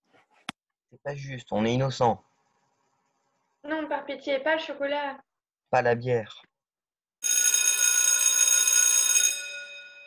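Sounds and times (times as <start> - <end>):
bell ringing rapidly: 7.2 - 10.0.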